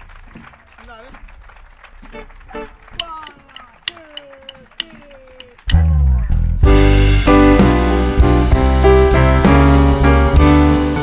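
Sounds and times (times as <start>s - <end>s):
blues band playing: 2.1s - 11.0s
drumsticks clicking together: 3.0s - 5.9s.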